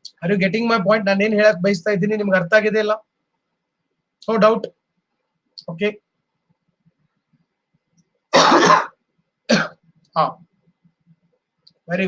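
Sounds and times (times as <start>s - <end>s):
man coughing: 8.4s - 9.8s.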